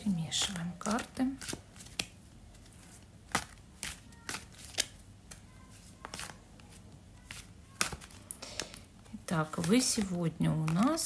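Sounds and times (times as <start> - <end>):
cards being shuffled: 0.4 - 11.0.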